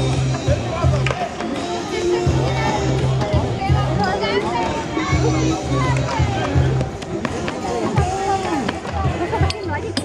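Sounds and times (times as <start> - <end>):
music with steady low bass: 0.0 - 1.1, 2.2 - 4.0.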